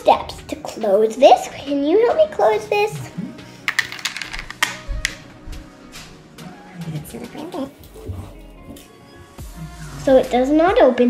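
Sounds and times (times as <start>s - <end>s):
plastic beads clicking: 3.7s - 5.2s.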